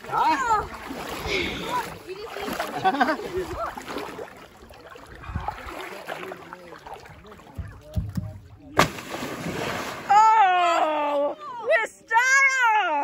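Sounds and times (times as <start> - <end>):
water sloshing: 0.0 - 11.6
people laughing: 2.5 - 3.8, 10.1 - 11.7
loud splash: 8.7 - 10.5.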